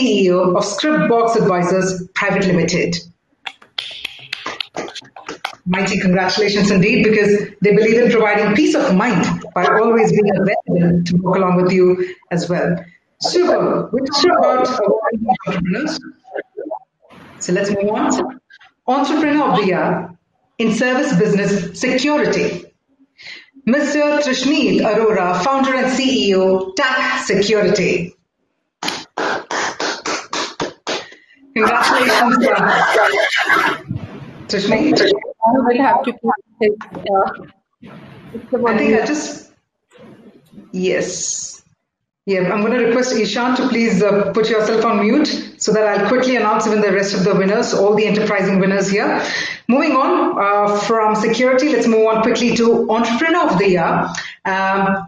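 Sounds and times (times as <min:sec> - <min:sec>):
uneven hand claps: 0:03.5 - 0:05.7, 0:28.8 - 0:31.2.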